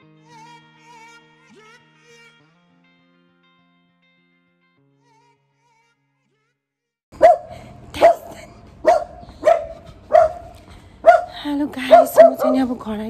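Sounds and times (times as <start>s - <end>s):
dog barking: 7.2s - 12.8s.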